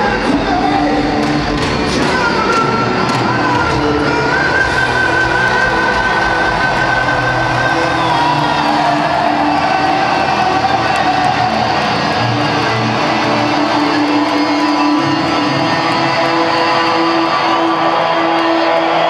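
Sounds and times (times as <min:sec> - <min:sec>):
heavy metal band playing live: 0:00.0 - 0:19.0.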